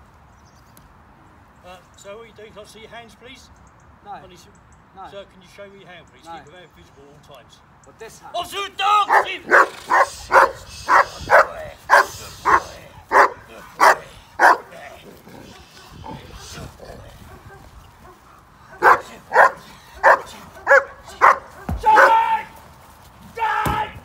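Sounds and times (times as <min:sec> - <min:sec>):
dog barking: 0:09.1 - 0:14.7, 0:17.2 - 0:22.2.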